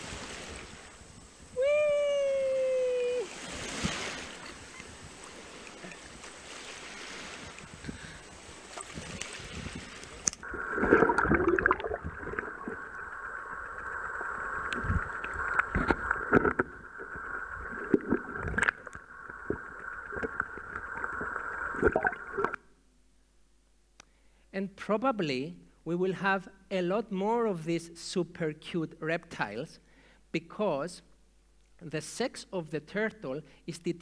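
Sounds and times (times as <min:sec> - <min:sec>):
surf washing over sand: 0:00.0 - 0:22.5
underwater high-pitched hum: 0:10.4 - 0:22.6
underwater knocks and clicks: 0:14.6 - 0:22.6.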